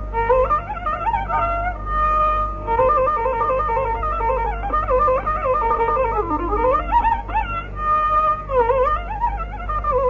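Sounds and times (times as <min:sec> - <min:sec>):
bamboo flute playing ornamented phrases: 0:00.0 - 0:10.0.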